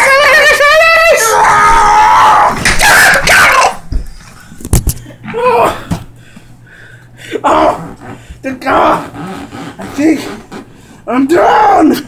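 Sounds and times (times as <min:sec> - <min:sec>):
man screaming: 0:00.0 - 0:03.8, 0:07.4 - 0:09.1, 0:11.3 - 0:12.0.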